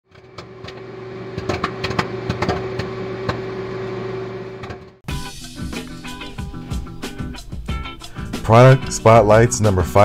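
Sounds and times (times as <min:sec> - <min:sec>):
popcorn popping: 0:00.1 - 0:03.6
microwave oven humming: 0:00.1 - 0:05.0.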